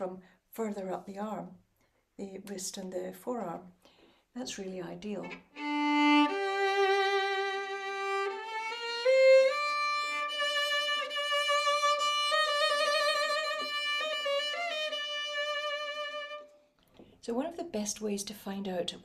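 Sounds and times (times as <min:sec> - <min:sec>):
solo violin slow bowed notes: 0:05.2 - 0:16.6.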